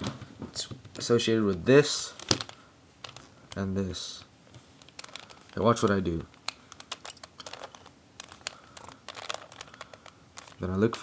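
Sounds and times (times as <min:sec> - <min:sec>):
puzzle cube plastic clicks: 0:02.2 - 0:11.0.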